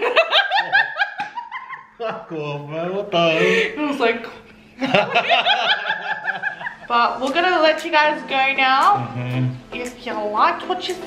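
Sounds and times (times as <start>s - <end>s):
man laughing: 0.0s - 2.6s, 4.8s - 6.9s.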